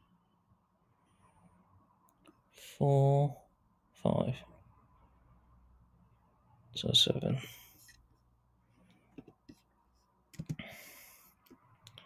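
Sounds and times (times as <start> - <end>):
computer mouse clicks: 10.3 - 10.6.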